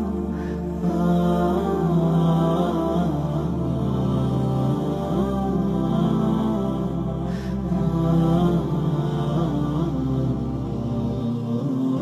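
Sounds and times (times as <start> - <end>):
low drone: 0.0 - 12.0.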